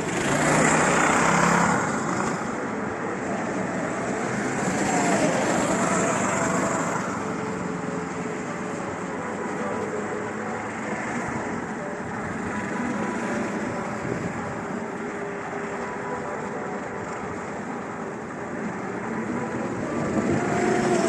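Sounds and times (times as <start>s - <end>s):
go-kart engines: 0.0s - 21.0s.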